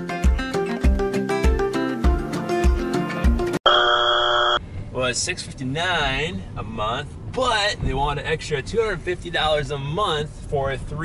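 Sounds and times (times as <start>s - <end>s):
upbeat background music: 0.0s - 3.6s
wrong answer buzzer: 3.6s - 4.6s.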